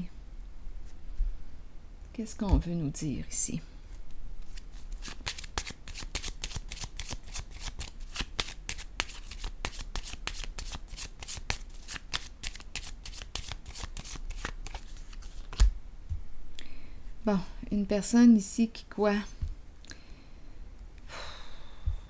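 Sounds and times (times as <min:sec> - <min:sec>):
cards being shuffled: 0:04.4 - 0:15.8.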